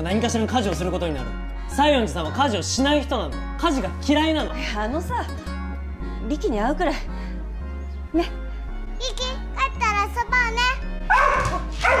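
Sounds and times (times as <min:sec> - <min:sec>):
background music: 0:00.0 - 0:12.0
dog barking: 0:11.1 - 0:12.0.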